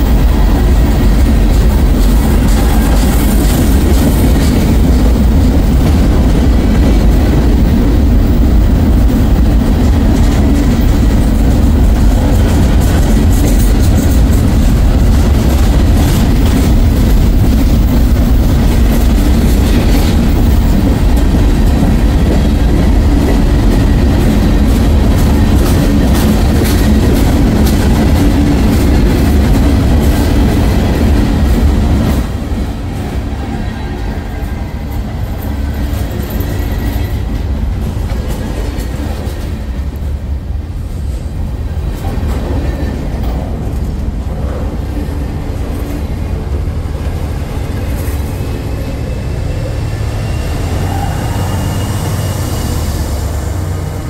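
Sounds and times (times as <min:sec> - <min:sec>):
train wheels rumbling on rail: 0:00.0 - 0:54.0
wheels clacking over rail joints: 0:00.1 - 0:33.3, 0:34.3 - 0:40.3.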